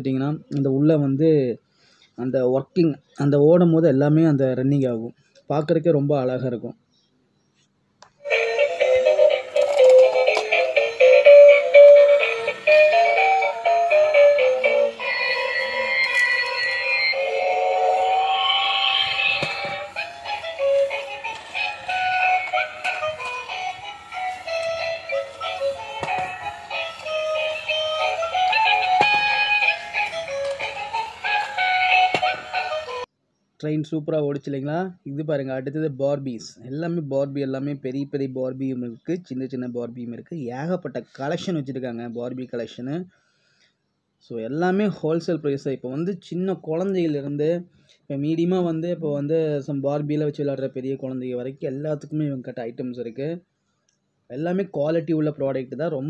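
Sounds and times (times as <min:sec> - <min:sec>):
toy electronic song: 0:08.2 - 0:33.1.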